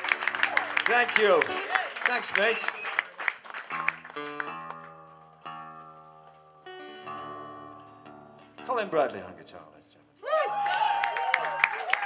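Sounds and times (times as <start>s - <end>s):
applause: 0.0s - 4.9s, 10.5s - 12.0s
acoustic guitar strings plucked: 4.2s - 9.3s.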